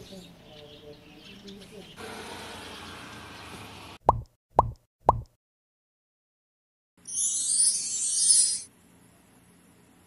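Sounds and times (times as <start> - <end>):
cartoon pop sound effects: 4.1 - 5.4.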